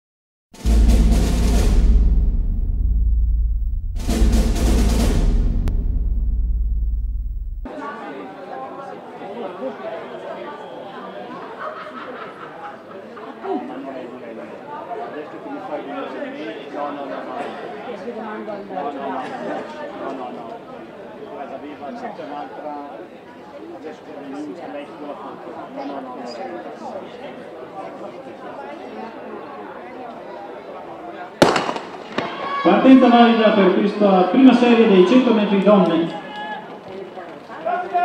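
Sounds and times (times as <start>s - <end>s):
deep low rumble: 0.6s - 7.7s
heavy drum hits: 0.6s - 7.7s
spectators chattering: 7.7s - 38.0s.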